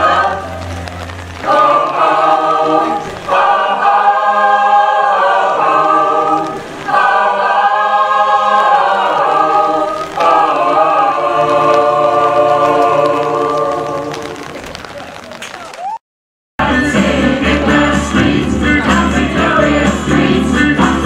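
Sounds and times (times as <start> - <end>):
mixed choir singing: 0.0 - 14.4, 16.6 - 21.0.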